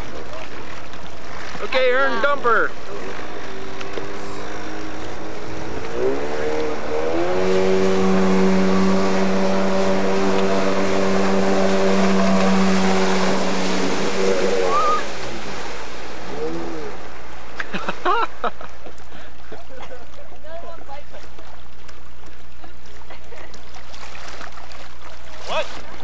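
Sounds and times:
watercraft engine revving: 0:00.0 - 0:26.0.

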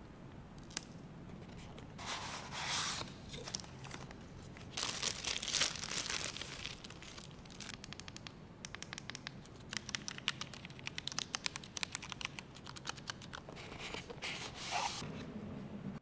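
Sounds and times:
plastic wrap crinkling: 0:03.4 - 0:08.3.

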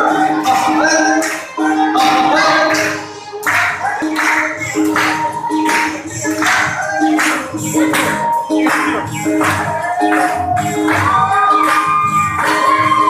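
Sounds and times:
group singing: 0:00.0 - 0:13.0
rhythmic hand claps: 0:00.0 - 0:13.0.

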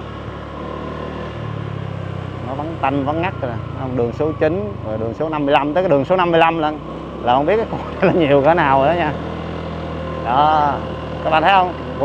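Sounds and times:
motorbike engine running: 0:01.4 - 0:12.0.

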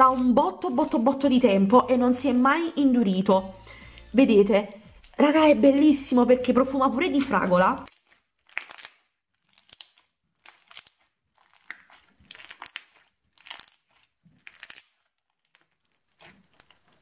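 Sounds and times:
crunchy slime being squeezed: 0:00.0 - 0:05.5, 0:07.2 - 0:17.0.

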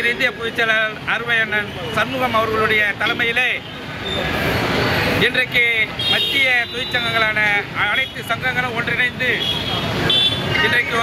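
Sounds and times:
man speaking: 0:00.0 - 0:03.7, 0:05.2 - 0:09.6, 0:10.6 - 0:11.0
faint traffic noise: 0:00.0 - 0:11.0.

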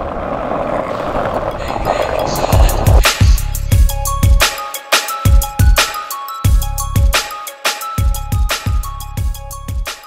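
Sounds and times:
skateboard wheels rolling on concrete: 0:00.0 - 0:03.6
music with heavy kick drum: 0:02.6 - 0:07.3, 0:08.0 - 0:10.0.

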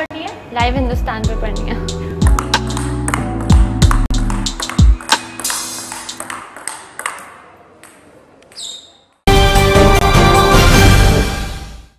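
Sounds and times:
table tennis ball clicking: 0:02.3 - 0:08.7.

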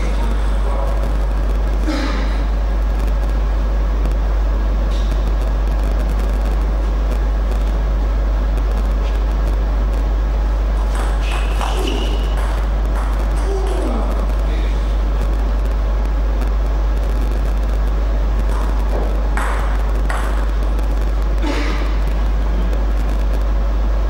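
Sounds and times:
steady low hum: 0:00.0 - 0:24.0
table tennis ball hits: 0:10.8 - 0:13.9, 0:18.5 - 0:20.6
faint voices: 0:11.5 - 0:15.0.

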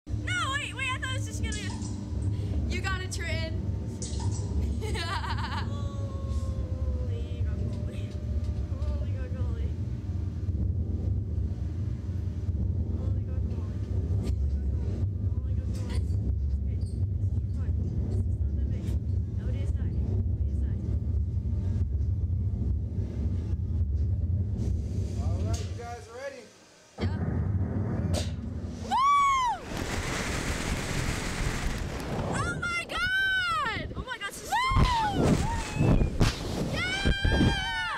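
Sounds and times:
wind buffeting microphone: 0:29.6 - 0:37.8.

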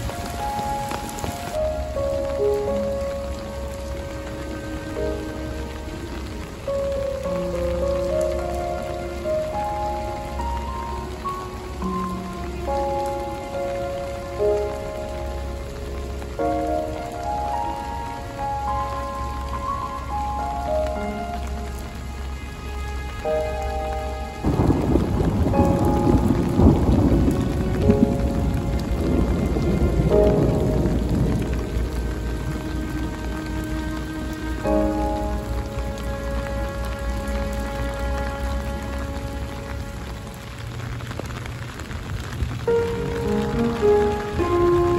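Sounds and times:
rain on paving stones: 0:00.0 - 0:44.9
soft melodic music: 0:00.0 - 0:44.9.

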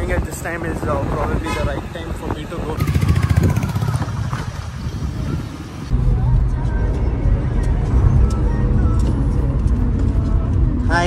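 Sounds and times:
street noise: 0:00.0 - 0:11.0
car engine and tyres from inside: 0:04.0 - 0:11.0.

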